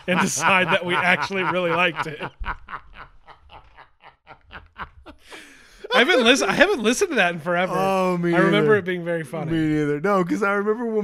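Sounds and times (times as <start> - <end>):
breathy snickering laughter: 0.0 - 5.5.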